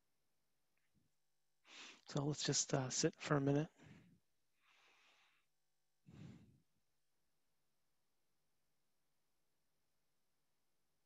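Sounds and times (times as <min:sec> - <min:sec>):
faint breaths: 0:01.7 - 0:02.1, 0:03.7 - 0:06.6.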